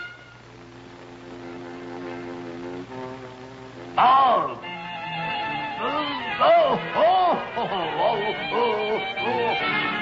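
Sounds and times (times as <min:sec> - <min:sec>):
cartoon motorboat engine drone: 0:01.3 - 0:10.0.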